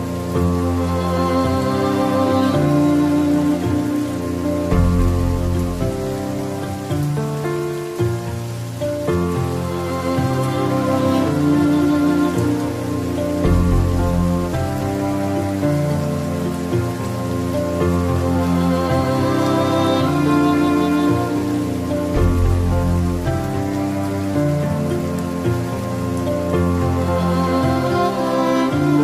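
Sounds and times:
soft instrumental music: 0.0s - 29.0s
steady rain falling: 0.0s - 29.0s.

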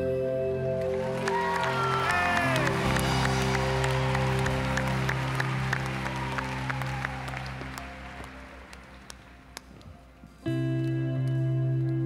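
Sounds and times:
audience applause: 0.7s - 9.8s.

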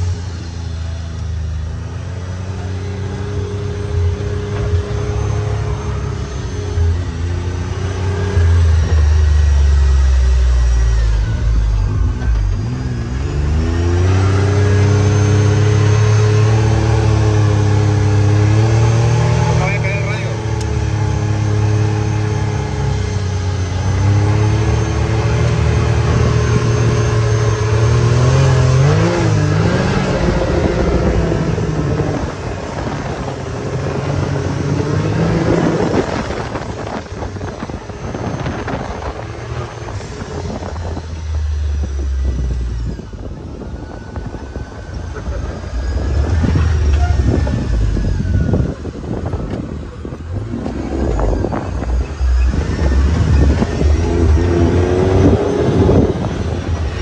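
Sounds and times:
engine revving: 0.0s - 57.0s.

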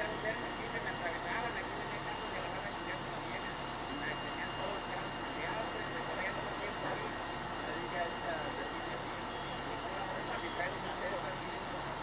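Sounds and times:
thin steady high tone: 0.0s - 11.8s
distant indistinct voices: 0.0s - 12.0s
fire engine running: 0.0s - 12.0s.

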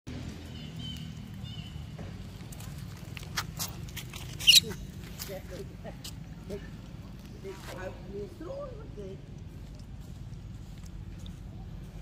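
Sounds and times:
footsteps on dry leaves and gravel: 9.5s - 12.0s.

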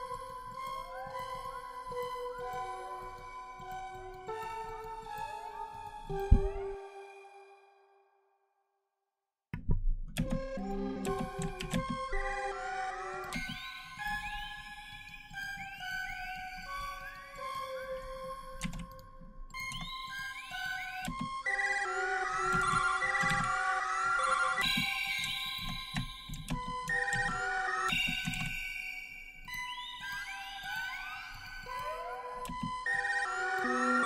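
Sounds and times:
synthesizer melody: 10.5s - 13.8s, 29.8s - 34.0s.

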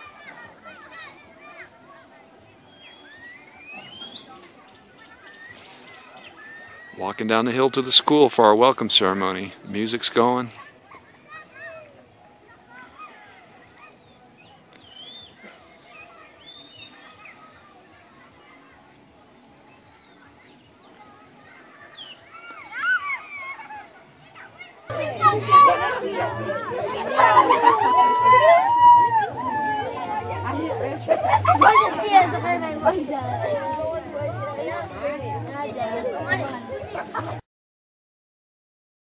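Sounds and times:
faint voices outdoors: 0.0s - 37.4s
birds chirping: 1.0s - 25.0s.

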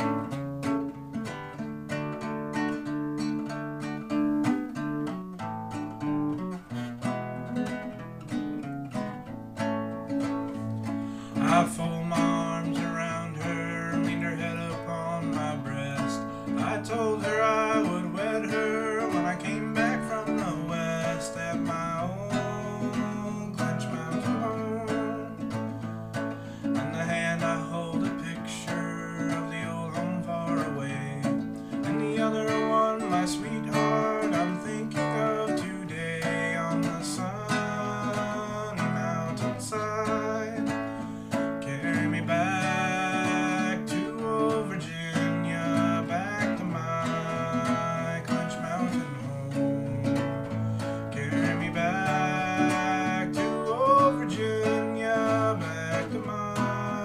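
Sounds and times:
acoustic guitar picking and strumming: 0.0s - 57.0s.

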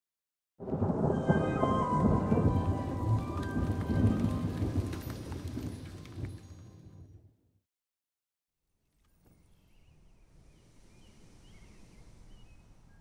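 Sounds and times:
dense rain-like hiss: 0.9s - 6.5s, 10.1s - 13.0s.

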